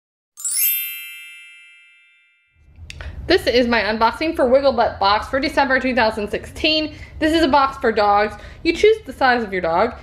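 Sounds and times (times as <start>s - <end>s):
bright chime: 0.4s - 2.8s.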